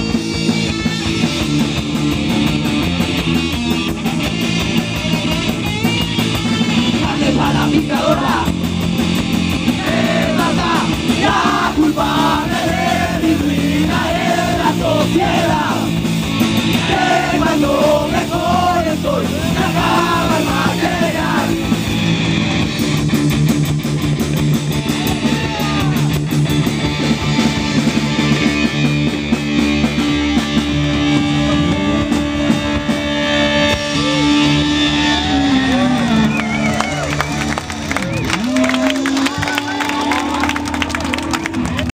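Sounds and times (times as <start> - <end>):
drums and cymbals: 0.0 - 40.8
electric guitar: 0.0 - 41.9
bass guitar: 0.0 - 42.0.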